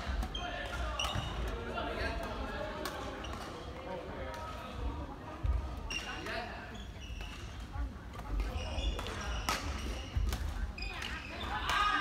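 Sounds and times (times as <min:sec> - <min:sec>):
rackets striking shuttlecock: 0:00.0 - 0:03.6, 0:07.2 - 0:12.0.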